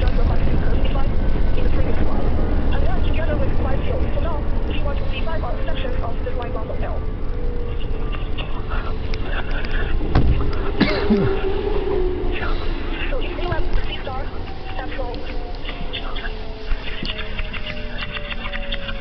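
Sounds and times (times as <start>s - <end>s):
passing train rush: 0.0s - 19.0s
train rumble inside carriage: 0.0s - 19.0s.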